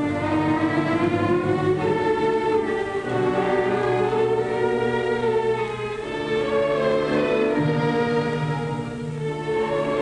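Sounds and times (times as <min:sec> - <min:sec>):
orchestral music with choir: 0:00.0 - 0:10.0.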